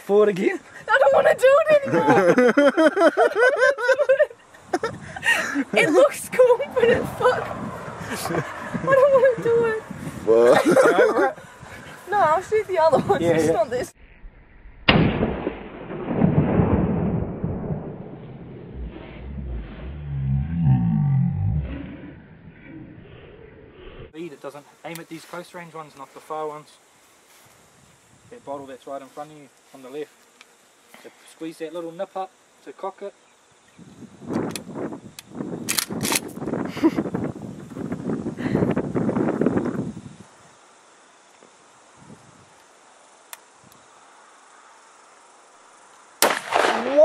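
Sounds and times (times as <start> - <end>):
wind buffeting microphone: 4.6 - 13.9, 33.7 - 40.3
shotgun shot: 14.9 - 18.0, 46.2 - 47.0
sharp clicks: 34.3 - 36.4.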